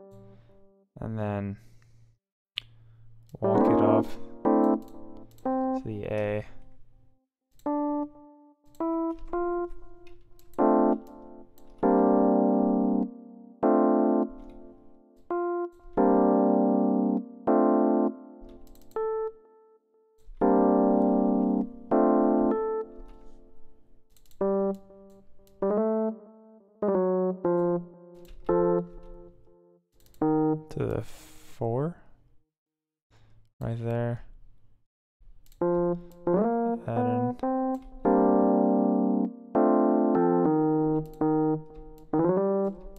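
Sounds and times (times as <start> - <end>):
electric piano jazzy chords: 0.0 - 0.8, 3.4 - 6.2, 7.6 - 23.8, 24.4 - 30.8, 35.6 - 42.9.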